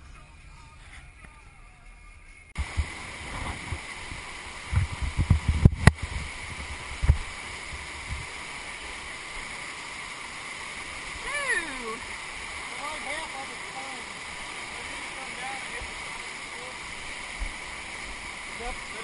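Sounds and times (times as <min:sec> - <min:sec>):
car cabin rumble: 0:02.6 - 0:07.3
low thumps: 0:02.6 - 0:08.3
river rapids roaring: 0:06.3 - 0:19.0.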